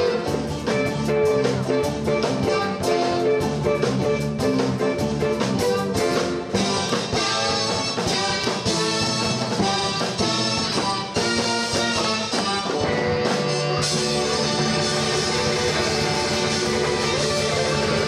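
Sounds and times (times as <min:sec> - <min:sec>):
live band playing: 0:00.0 - 0:18.0
brass-like held chords: 0:05.6 - 0:18.0.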